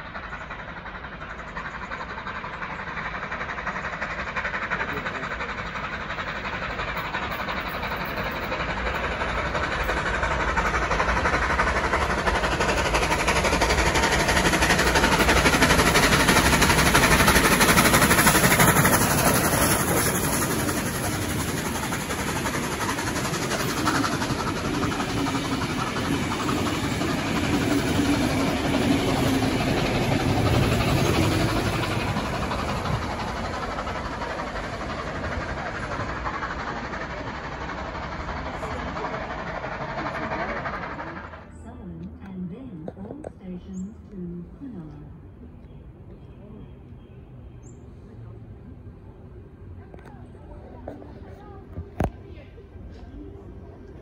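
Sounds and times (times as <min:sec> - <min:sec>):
steam train running gear rumble: 0:00.0 - 0:54.0.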